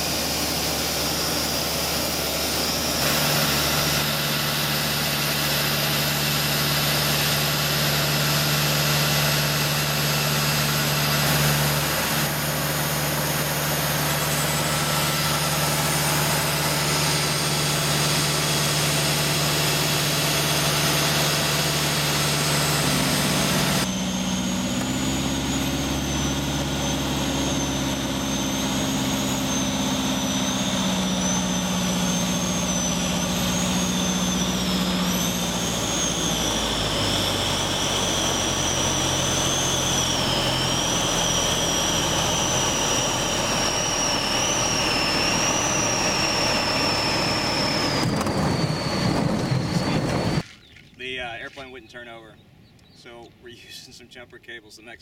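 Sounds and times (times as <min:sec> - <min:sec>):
light aircraft engine and propeller: 0:00.0 - 0:55.0.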